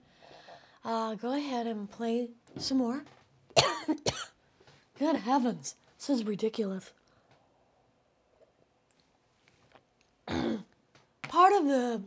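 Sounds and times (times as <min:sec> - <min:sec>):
woman coughing: 0:03.6 - 0:04.4, 0:10.3 - 0:10.7.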